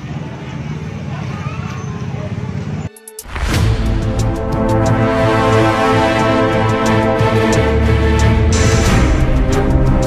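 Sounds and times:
low street rumble: 0.0s - 10.0s.

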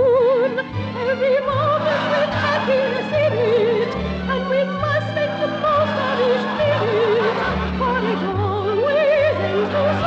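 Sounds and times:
instrumental accompaniment: 0.0s - 10.0s
woman singing with vibrato: 0.0s - 10.0s.

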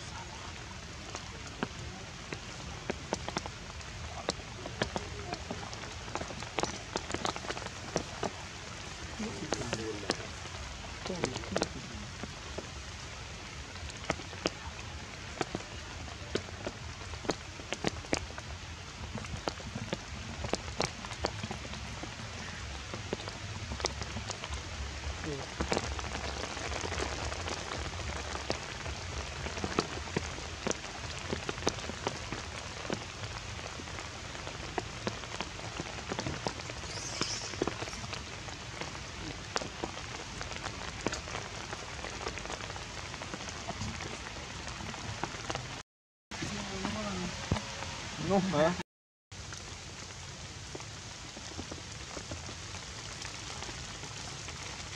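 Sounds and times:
rain falling on foliage: 0.0s - 54.9s.

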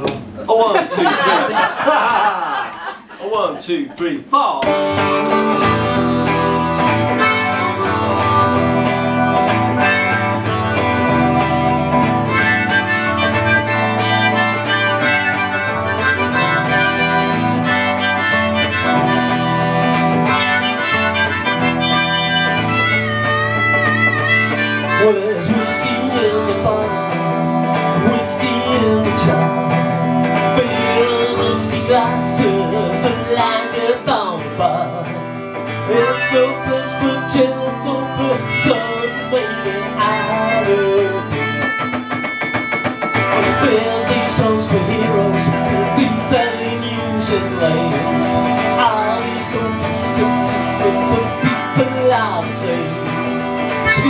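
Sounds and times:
harmonica: 4.6s - 54.0s
strummed electric guitar: 4.6s - 54.0s.

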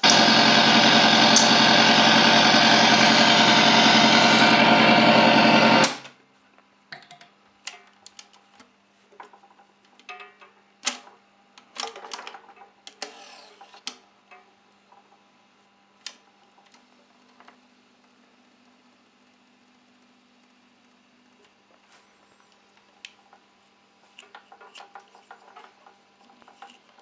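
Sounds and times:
turntable motor buzzing: 0.0s - 6.0s, 13.0s - 13.9s.

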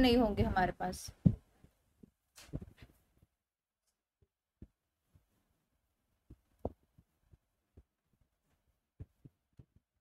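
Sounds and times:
faint soft low thumps: 0.0s - 2.8s.

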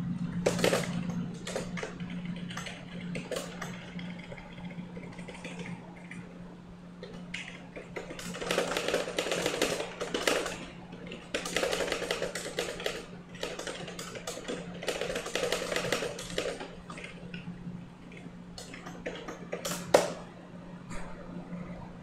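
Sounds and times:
fast typing on keyboard: 0.4s - 6.3s, 7.0s - 17.4s, 18.1s - 20.2s.

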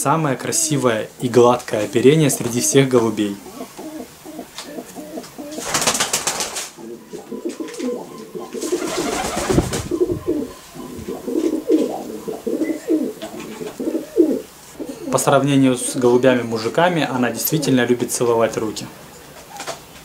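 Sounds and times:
pigeon cooing: 1.7s - 5.8s, 6.8s - 18.1s.

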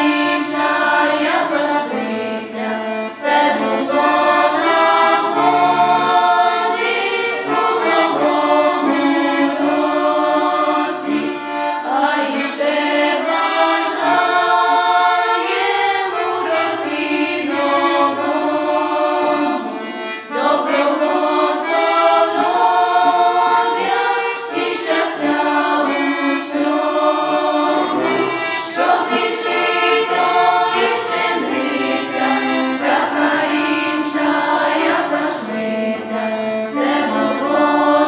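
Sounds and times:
accordion: 0.0s - 38.0s
choir singing a carol: 0.0s - 38.0s.

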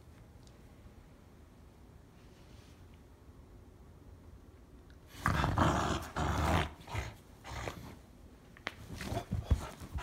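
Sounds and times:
dog growling: 5.2s - 8.0s.

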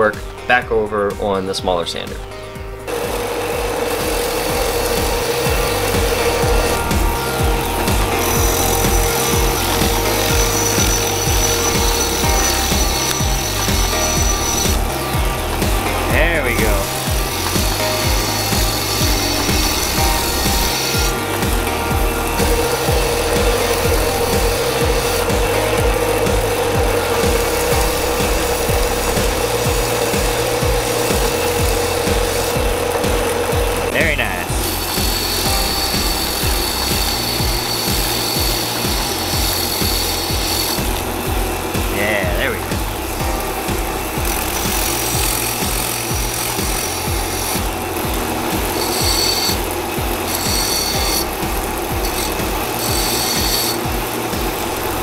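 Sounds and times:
belt and motor whine: 2.8s - 55.0s
belt grinder grinding steel: 2.8s - 55.0s.

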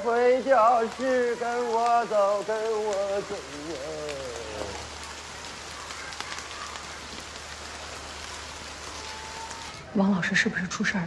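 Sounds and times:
raindrop ticks: 0.0s - 11.0s
steady rain hissing: 0.0s - 11.0s.

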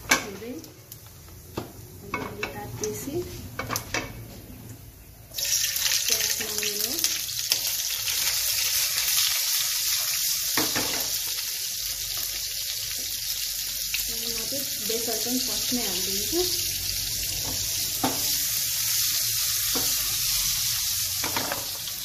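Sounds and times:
onion and garlic frying: 0.0s - 22.0s
hot oil sizzling in a pan: 5.3s - 22.0s.

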